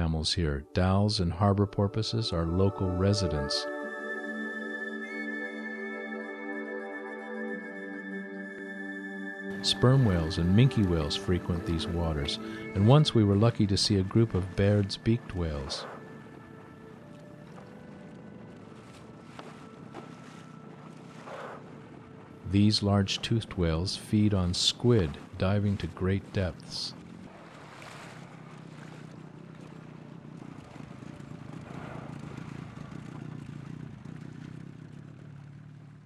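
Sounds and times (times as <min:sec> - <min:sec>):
sea noise: 0:02.3 - 0:36.0
boat engine running: 0:09.5 - 0:36.0.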